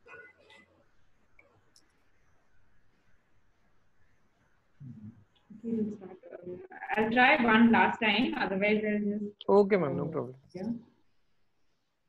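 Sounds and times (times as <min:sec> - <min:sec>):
woman talking over video call: 0:05.5 - 0:10.8.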